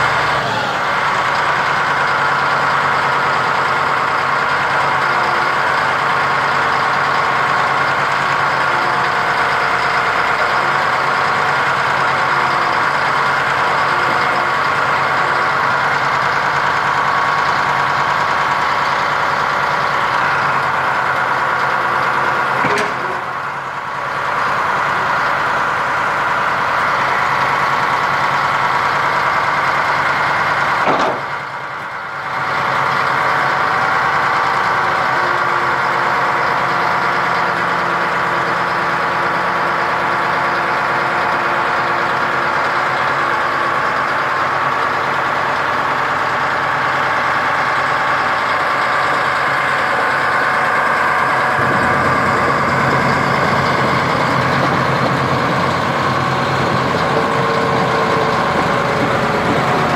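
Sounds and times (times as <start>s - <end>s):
diesel engine idling: 0.0s - 59.9s.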